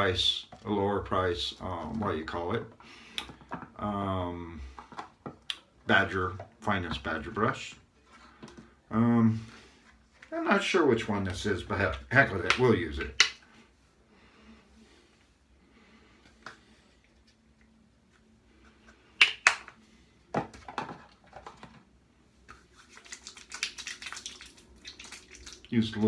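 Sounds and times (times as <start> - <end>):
plastic bottle cap snapping: 19.2 - 19.7
hands rubbing balm squelching: 22.4 - 25.7.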